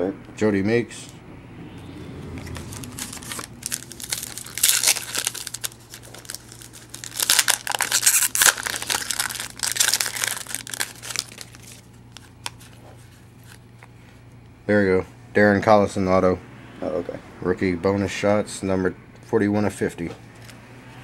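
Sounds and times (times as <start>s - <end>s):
foil wrapper crinkling and tearing: 2.5s - 13.6s.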